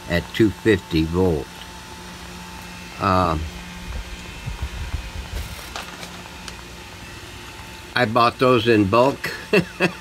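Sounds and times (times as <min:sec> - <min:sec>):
plastic bag crinkling: 0:05.0 - 0:06.7.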